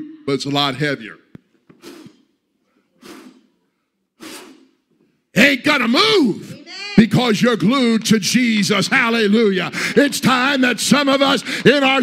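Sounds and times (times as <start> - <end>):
breaths into microphone: 1.7 - 4.9, 11.4 - 11.7.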